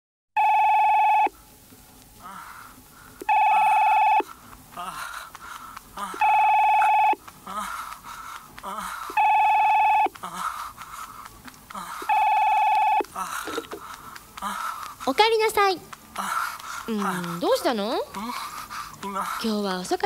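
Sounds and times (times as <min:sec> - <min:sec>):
telephone ringing: 0:00.4 - 0:01.3, 0:03.3 - 0:04.3, 0:06.2 - 0:07.2, 0:09.2 - 0:10.1, 0:12.1 - 0:13.0.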